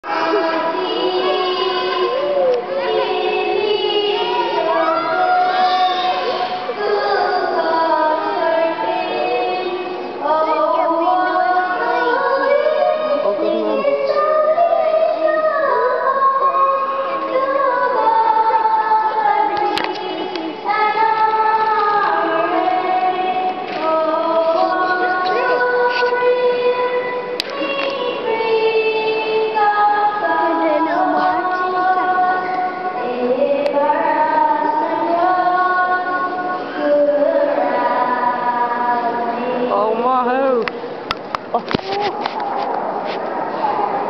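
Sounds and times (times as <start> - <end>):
child singing in a church: 0.0 - 40.0.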